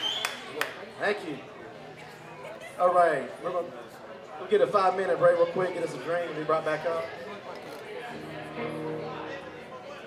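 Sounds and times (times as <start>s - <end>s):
bar crowd chatter: 0.0s - 10.0s
faint music: 7.7s - 10.0s.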